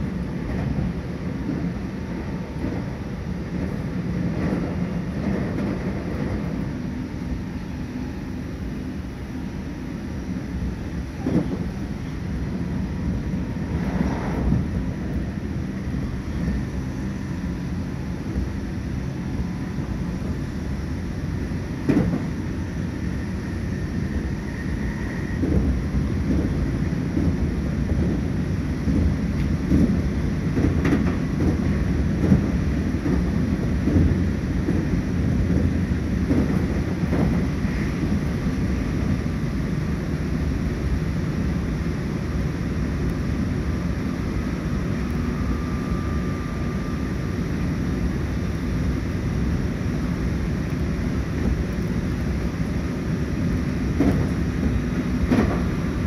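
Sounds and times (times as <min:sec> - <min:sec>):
train wheels rumbling on rail: 0:00.0 - 0:56.0.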